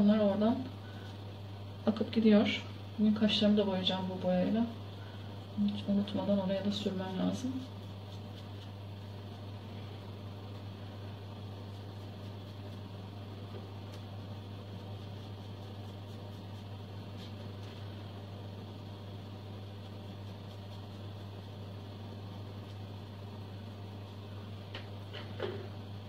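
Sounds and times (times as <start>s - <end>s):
exhaust fan humming: 0.0s - 26.0s.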